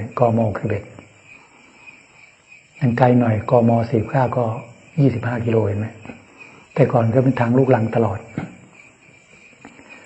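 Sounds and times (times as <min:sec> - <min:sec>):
man speaking: 0:00.0 - 0:01.1, 0:02.8 - 0:08.6
insects chirring: 0:00.0 - 0:10.0.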